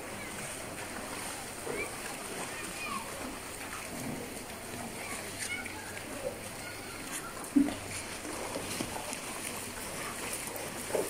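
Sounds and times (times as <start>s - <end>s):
cows splashing in water: 0.0s - 11.0s
river water running over stones: 0.0s - 11.0s.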